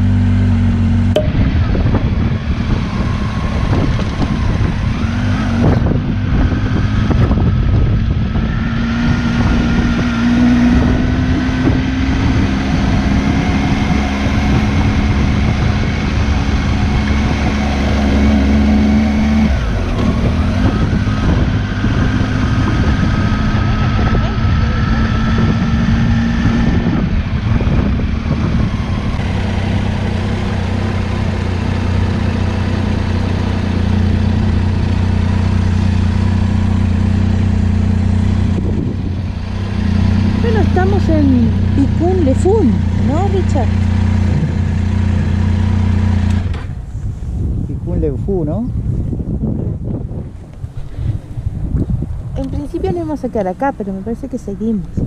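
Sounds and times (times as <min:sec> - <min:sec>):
motorcycle engine running: 0:00.0 - 0:55.0
wind and road noise: 0:00.0 - 0:55.0.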